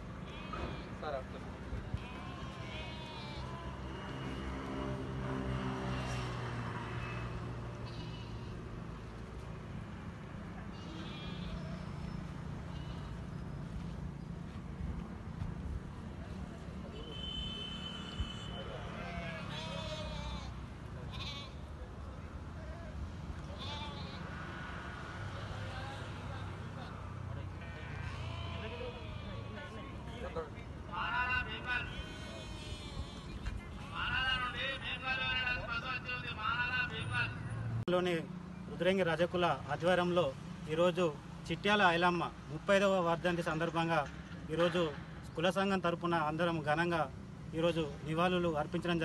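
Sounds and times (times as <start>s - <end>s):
sheep bleating: 0.3s - 1.0s, 1.9s - 3.8s, 7.8s - 8.6s, 10.7s - 11.7s, 12.7s - 13.2s, 18.7s - 21.7s, 23.4s - 24.4s, 27.6s - 29.8s, 31.8s - 34.1s.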